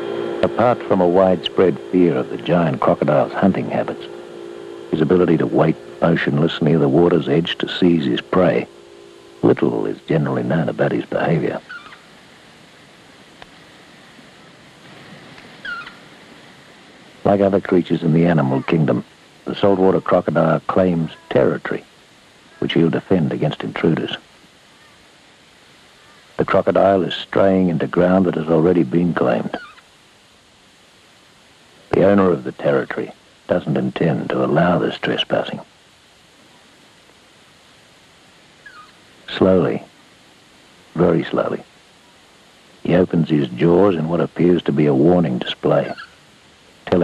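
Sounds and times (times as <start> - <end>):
faint background hiss: 0.0 - 47.0
faint wavering high squeak: 11.6 - 12.1, 15.6 - 16.0
high-pitched animal call: 11.6 - 12.1, 15.6 - 16.1, 18.3 - 19.0, 29.6 - 29.9, 38.6 - 39.0, 45.8 - 46.2.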